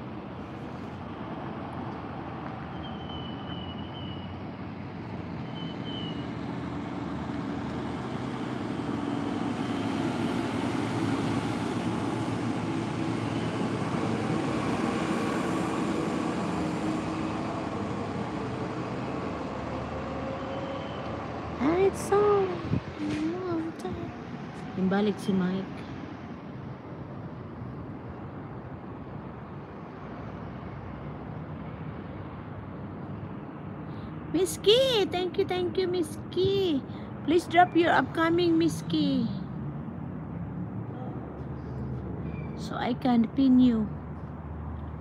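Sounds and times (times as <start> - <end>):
passing vehicle engine: 0.0 - 45.0.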